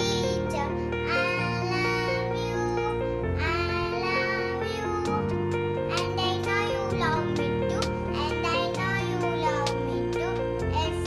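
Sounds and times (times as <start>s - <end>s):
girl singing: 0.0s - 11.0s
instrumental accompaniment: 0.0s - 11.0s.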